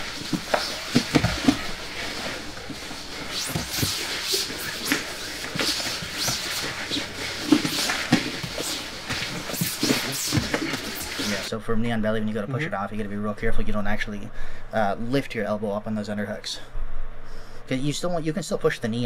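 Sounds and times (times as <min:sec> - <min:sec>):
grapplers scuffling on mats: 0:00.0 - 0:11.5.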